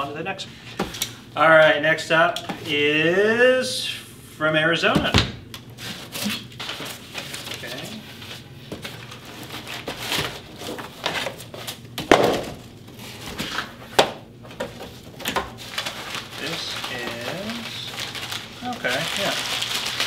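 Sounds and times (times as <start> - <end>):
cardboard and paper rustling: 5.8 - 20.0.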